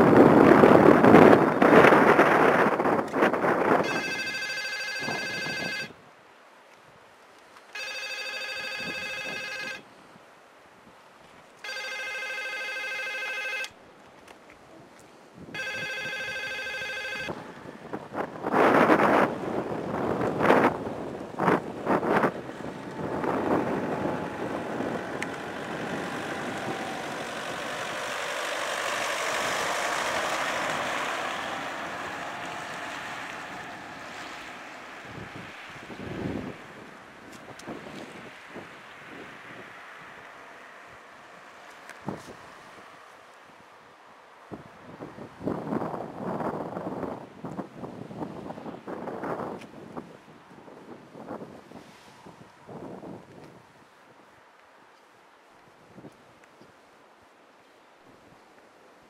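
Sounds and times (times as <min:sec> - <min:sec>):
wind buffeting microphone: 0:00.0 - 0:04.0, 0:17.3 - 0:41.1, 0:41.8 - 0:43.0, 0:44.5 - 0:54.3
telephone ringing: 0:03.8 - 0:06.0, 0:07.7 - 0:09.8, 0:11.6 - 0:13.8, 0:15.6 - 0:17.4.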